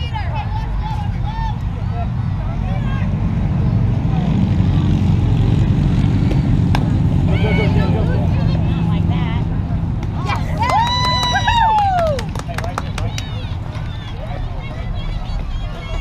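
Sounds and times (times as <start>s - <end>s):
bat hitting ball: 6.3s - 7.0s
people talking: 6.3s - 16.0s.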